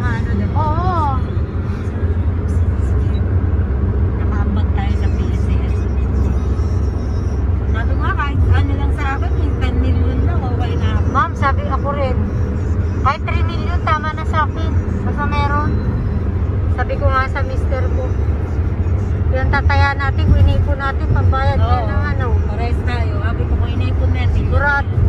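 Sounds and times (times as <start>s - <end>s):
road and engine rumble: 0.0s - 25.0s
voices: 4.2s - 25.0s.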